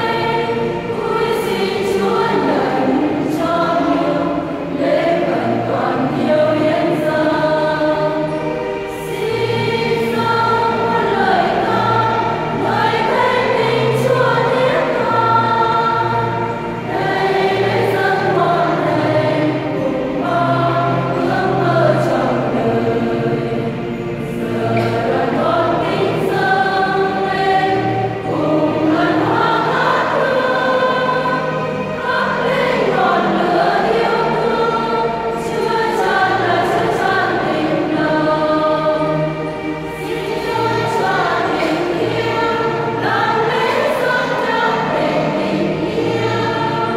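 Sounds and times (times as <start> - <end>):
choir singing a hymn: 0.0 - 46.9.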